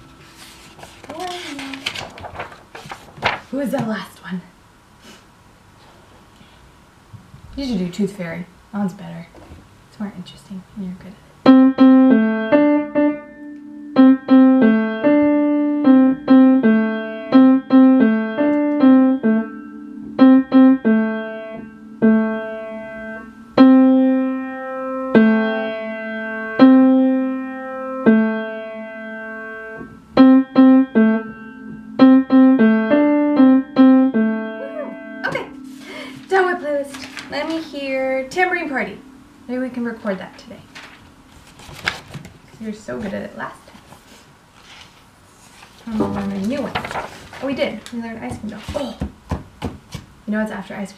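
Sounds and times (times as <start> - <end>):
upright piano melody: 11.4 - 41.7.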